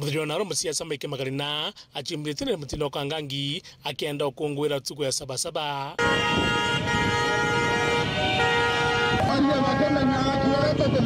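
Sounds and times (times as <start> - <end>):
engines: 6.0 - 11.0
vehicle horns blasting: 6.0 - 11.0.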